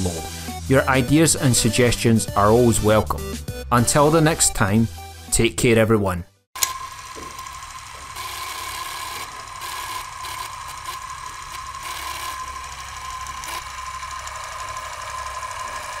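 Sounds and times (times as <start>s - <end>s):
film projector clattering whir: 6.6s - 16.0s.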